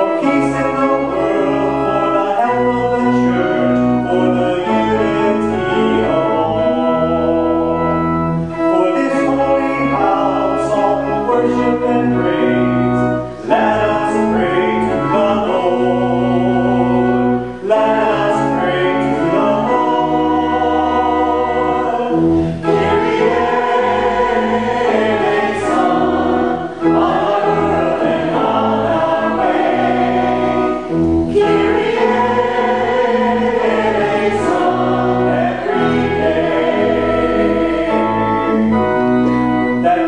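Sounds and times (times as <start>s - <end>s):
congregation singing: 0.0s - 40.0s
organ: 0.0s - 40.0s.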